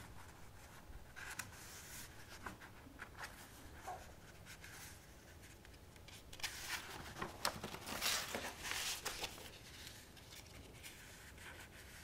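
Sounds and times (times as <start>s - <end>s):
paper sheets rustling: 1.2s - 12.0s.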